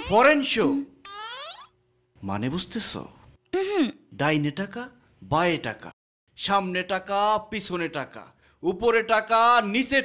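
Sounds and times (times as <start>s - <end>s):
man speaking: 0.0s - 1.0s.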